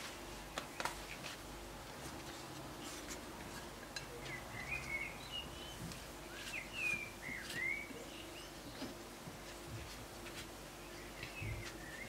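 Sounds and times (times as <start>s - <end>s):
pastry sheets rustling: 0.0s - 4.4s
low steady hum: 0.0s - 12.0s
bird chirping: 4.0s - 8.9s, 10.8s - 12.0s.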